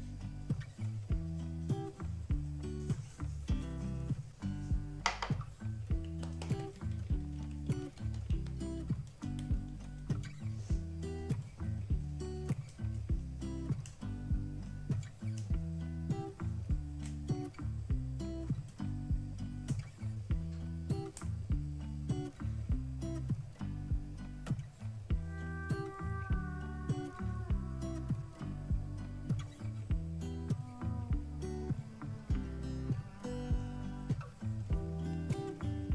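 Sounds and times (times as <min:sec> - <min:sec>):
plucked guitar music: 0:00.0 - 0:35.9.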